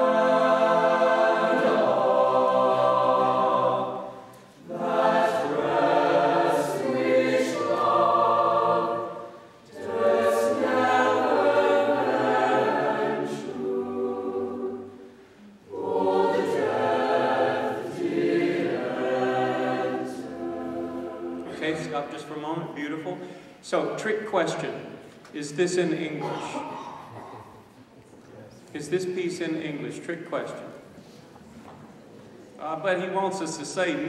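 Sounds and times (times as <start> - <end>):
mixed choir singing: 0.0 - 22.4.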